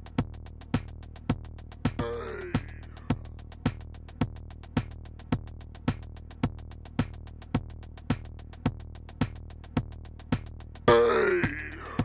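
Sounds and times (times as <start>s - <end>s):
electronic drum beat: 0.0s - 12.0s.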